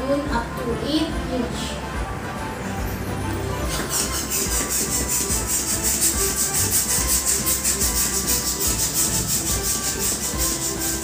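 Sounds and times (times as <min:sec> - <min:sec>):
hand pump whooshing air: 0:03.6 - 0:11.0.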